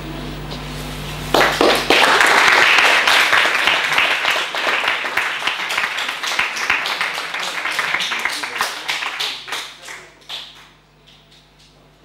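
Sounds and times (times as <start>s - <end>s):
audience applause: 1.3s - 10.8s.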